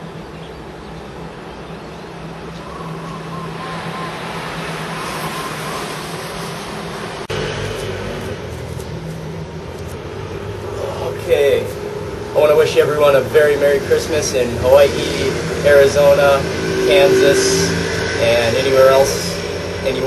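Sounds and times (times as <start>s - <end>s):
city traffic hum: 0.0s - 20.0s
faint low drone: 0.0s - 20.0s
loud low hum: 0.0s - 20.0s.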